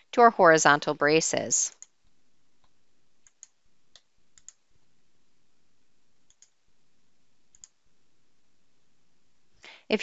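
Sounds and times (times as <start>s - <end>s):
faint computer mouse clicks: 6.3s - 6.6s.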